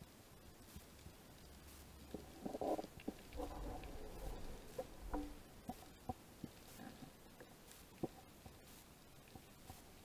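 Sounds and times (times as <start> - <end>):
low underwater hum: 0.0 - 10.0
faint underwater clicks: 0.4 - 10.0
gurgling rumble: 2.1 - 6.2.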